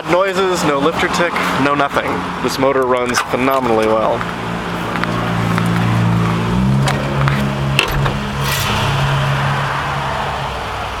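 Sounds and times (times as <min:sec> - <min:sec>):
car engine idling: 0:02.4 - 0:11.0.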